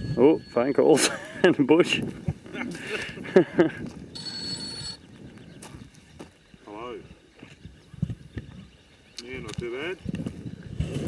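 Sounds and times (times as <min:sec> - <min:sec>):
electronic phone ringtone: 0:00.0 - 0:01.5, 0:04.1 - 0:05.1.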